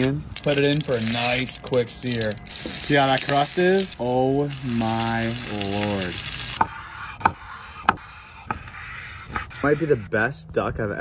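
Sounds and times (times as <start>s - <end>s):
knife cutting on wooden board: 6.4s - 10.1s.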